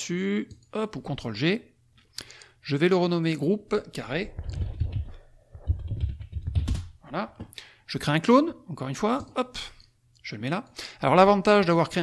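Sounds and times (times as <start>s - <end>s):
computer keyboard keystrokes: 4.4s - 6.9s.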